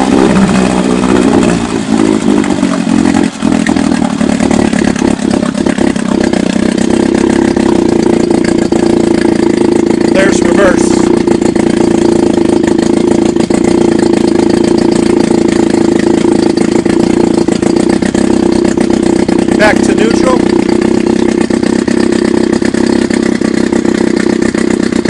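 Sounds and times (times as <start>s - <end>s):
outboard motor running: 0.0s - 25.0s.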